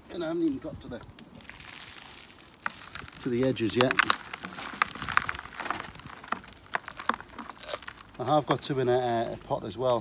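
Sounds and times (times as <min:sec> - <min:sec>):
soil and roots rustling and crunching: 0:00.0 - 0:10.0.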